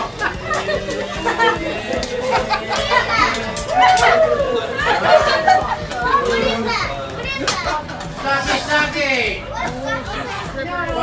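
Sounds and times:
group of people laughing: 0.0 - 8.6.

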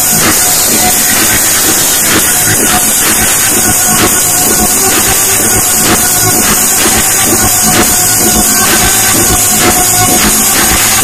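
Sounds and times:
loud trance dance music: 0.0 - 11.0.

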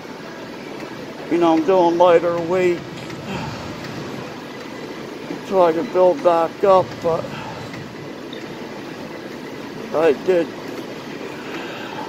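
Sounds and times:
ventilation and machine hum: 0.0 - 12.0.

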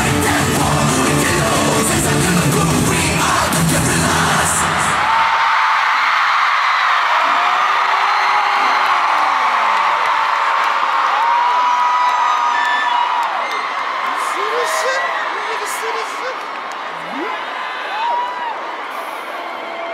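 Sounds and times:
live concert music: 0.0 - 5.3
crowd screaming and cheering: 0.0 - 19.9.

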